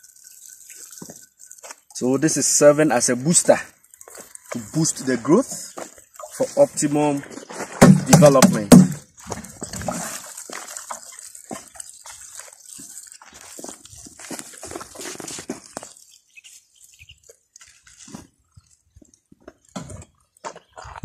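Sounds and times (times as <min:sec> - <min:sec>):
water pouring onto dry soil: 0:00.0 - 0:20.4.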